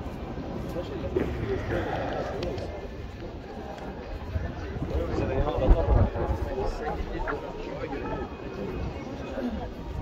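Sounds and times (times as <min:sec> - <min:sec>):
crowd talking indistinctly: 0:00.0 - 0:10.0.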